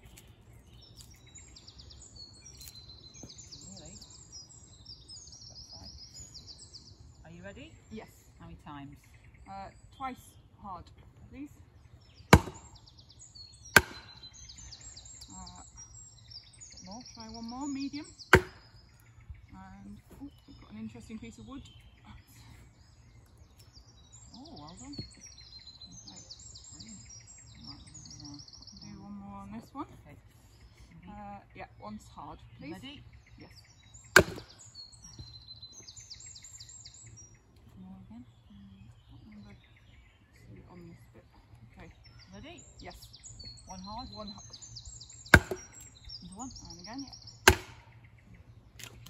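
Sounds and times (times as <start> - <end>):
birds singing: 0.0 - 49.0
mallet striking blade on log: 12.3 - 12.8, 13.8 - 14.2, 18.3 - 18.7, 34.2 - 34.6, 45.3 - 45.8, 47.5 - 47.8
wooden club knocking billhook: 34.2 - 34.5, 45.4 - 45.8, 47.5 - 47.8.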